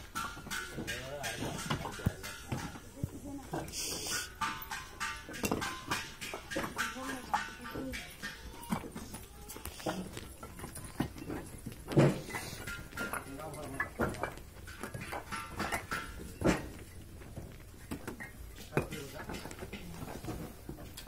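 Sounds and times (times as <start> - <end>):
bricks clinking and knocking: 0.0 - 21.0.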